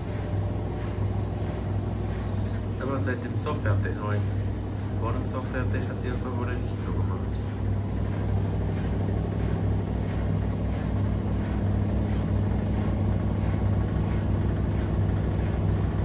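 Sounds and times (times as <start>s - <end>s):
drum turning pulse: 0.0s - 16.0s
washing machine motor hum: 0.0s - 16.0s.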